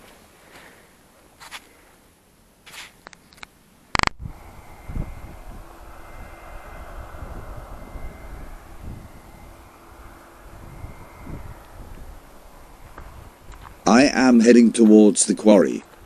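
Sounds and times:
sharp click: 3.0s - 4.2s
distant engine drone with whine: 3.8s - 16.0s
wind buffeting microphone: 4.0s - 15.0s.

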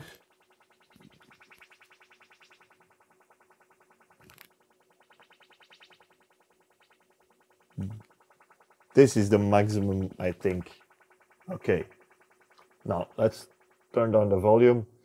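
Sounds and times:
rapid synth-like chirps from speaker: 0.0s - 15.0s.

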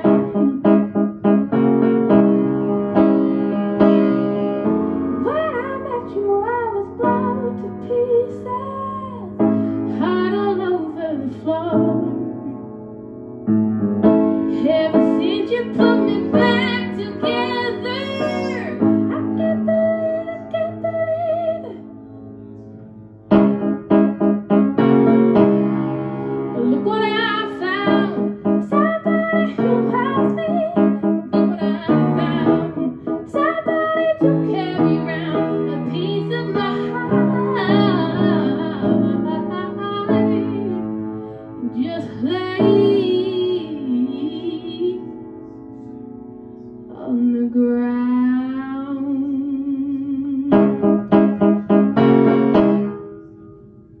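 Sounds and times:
upright piano chords: 0.0s - 54.0s
woman singing: 5.2s - 12.2s, 14.5s - 21.8s, 26.6s - 41.0s, 41.6s - 45.1s, 46.9s - 50.8s.

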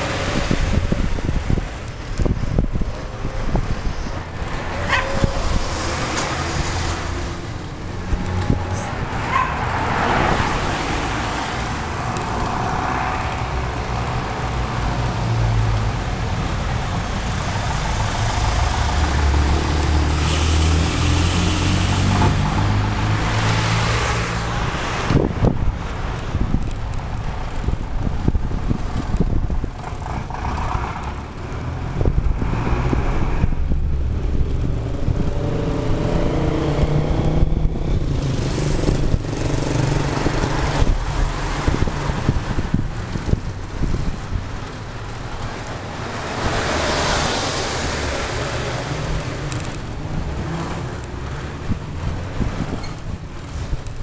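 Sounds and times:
car engines running: 0.0s - 54.0s
road and wind noise: 0.0s - 54.0s.

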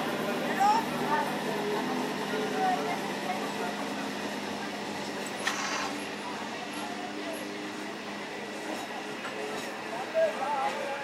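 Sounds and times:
electric train rolling slowly: 0.0s - 11.0s.

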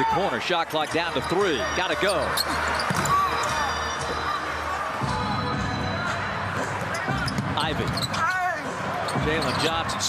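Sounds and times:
sneaker squeaks: 1.9s - 4.4s, 6.9s - 8.3s, 9.0s - 9.8s.

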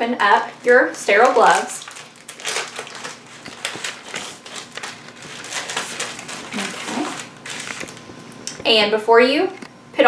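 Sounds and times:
glove packaging crinkling: 0.5s - 8.4s.

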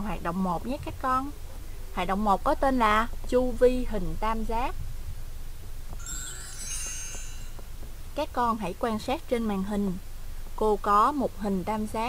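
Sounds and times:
sparkling chime: 6.0s - 7.9s.

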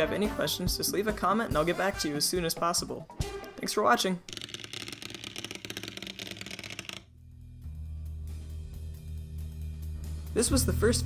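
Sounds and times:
legs chattering on wooden tabletop: 4.3s - 7.1s.

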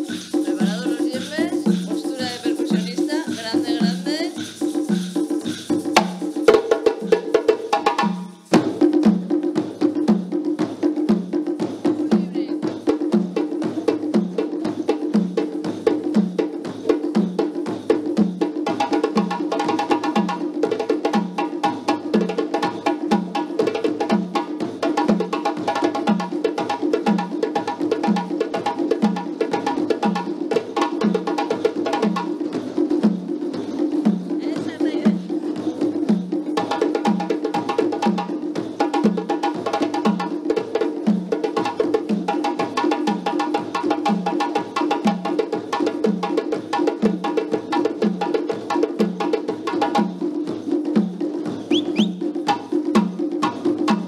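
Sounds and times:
egg shakers: 0.0s - 7.4s
djembe played with hands: 0.0s - 54.0s
drums struck with sticks: 0.0s - 54.0s.

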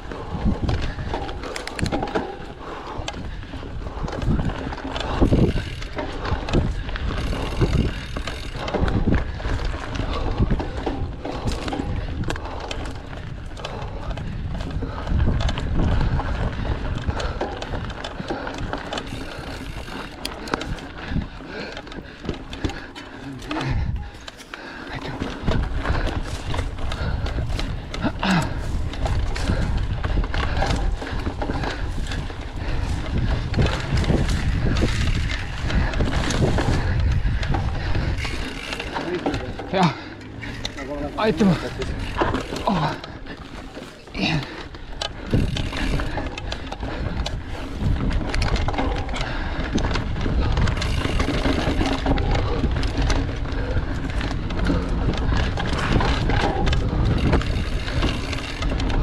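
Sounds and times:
bike rattles and knocks: 0.0s - 59.0s
bike tyre noise: 0.0s - 59.0s
wind buffeting microphone: 0.0s - 59.0s.

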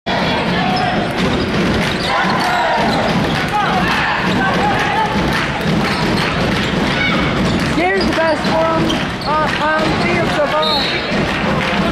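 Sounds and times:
murmur of crowd voices: 0.1s - 11.9s
sneakers squeaking: 0.5s - 11.3s
basketball dribbling on court: 0.8s - 11.9s.

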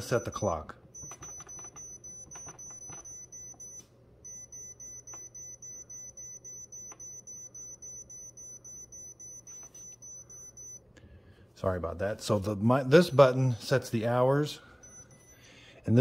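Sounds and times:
rapid short high beeps: 0.0s - 10.8s, 14.8s - 15.4s.

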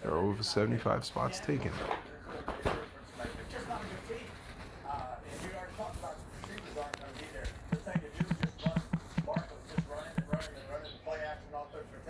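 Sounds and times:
fingers tapping phone screen: 7.6s - 10.7s.

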